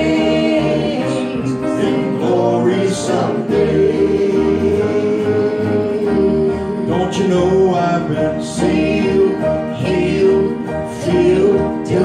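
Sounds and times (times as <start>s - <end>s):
guitar accompaniment: 0.0s - 12.0s
voices singing gospel: 0.0s - 12.0s.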